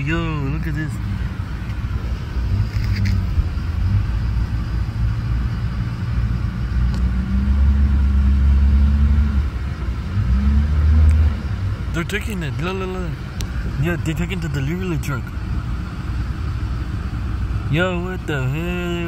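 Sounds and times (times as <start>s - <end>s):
vehicle engine humming: 0.0s - 19.0s.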